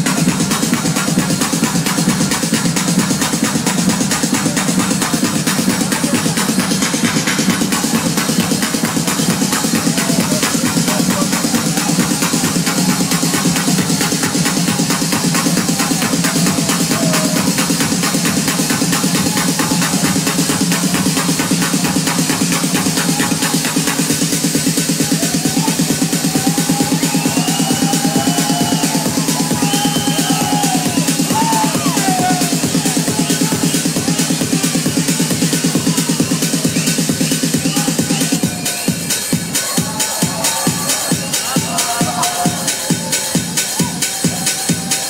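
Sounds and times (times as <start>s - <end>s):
loud techno music: 0.0s - 45.0s.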